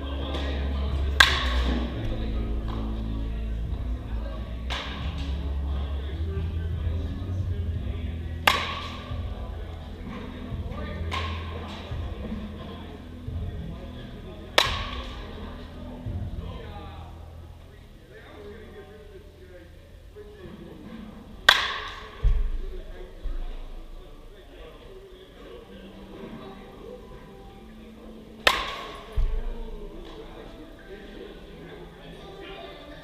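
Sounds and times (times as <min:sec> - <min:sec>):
background music: 0:00.0 - 0:33.0
murmur of voices: 0:00.0 - 0:33.0
bat cracking a ball: 0:01.2 - 0:01.8, 0:08.5 - 0:09.1, 0:14.6 - 0:15.2, 0:21.5 - 0:22.6, 0:28.4 - 0:29.4.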